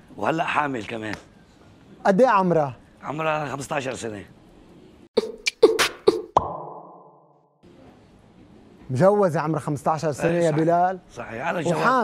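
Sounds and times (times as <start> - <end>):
logo pops with low tone: 5.2 - 7.5.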